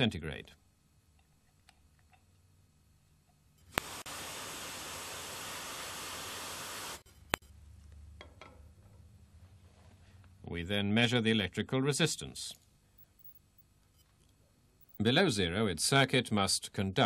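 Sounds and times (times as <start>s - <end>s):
aerosol spray hissing: 3.7s - 7.0s.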